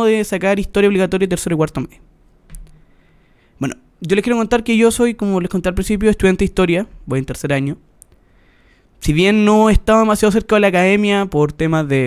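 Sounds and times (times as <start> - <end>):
man speaking: 0.0 - 2.0, 3.6 - 7.8, 9.0 - 12.0
soft click: 2.5 - 2.8.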